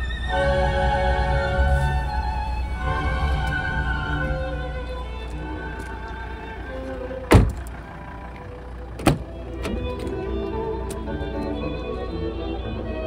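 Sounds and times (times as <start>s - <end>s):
orchestral music from radio: 0.0s - 13.0s
car door shutting: 1.6s - 11.9s.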